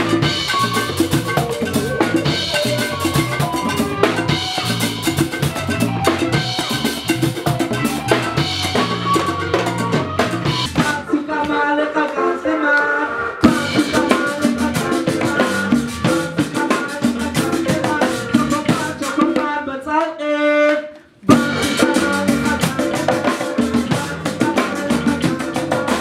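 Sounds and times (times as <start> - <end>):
drum kit crash: 0.0 - 11.1, 13.4 - 19.0, 21.3 - 26.0
drum kit and congas groove: 0.0 - 11.6, 13.4 - 19.6, 21.2 - 26.0
keyboard and wind instrument notes: 0.0 - 18.9, 21.3 - 26.0.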